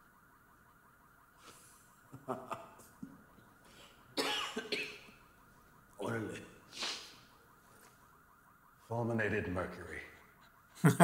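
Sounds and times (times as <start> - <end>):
person coughing: 4.2 - 5.1.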